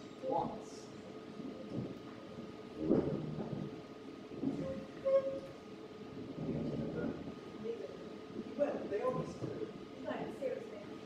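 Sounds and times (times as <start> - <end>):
faint steady hum: 0.0 - 11.0
indistinct low voices: 2.7 - 10.0.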